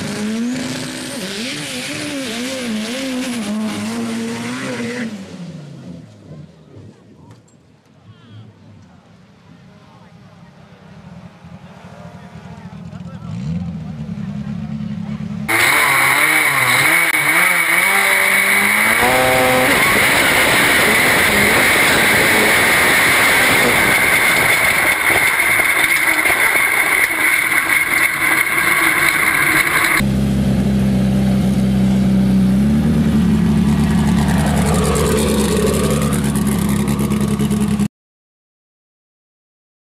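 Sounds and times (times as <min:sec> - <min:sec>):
buggy engine revving: 0:00.0 - 0:07.2, 0:11.0 - 0:37.9.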